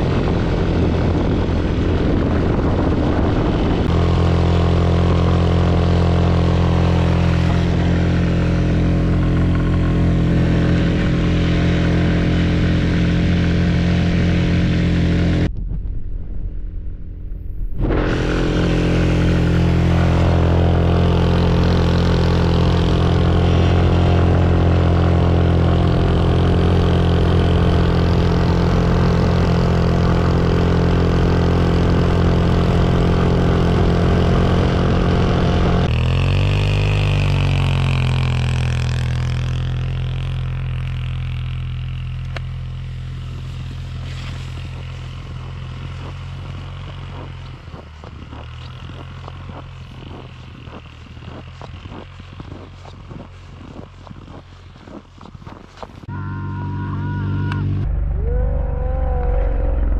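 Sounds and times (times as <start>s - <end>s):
go-kart engine running: 0.0s - 15.5s, 17.8s - 59.9s.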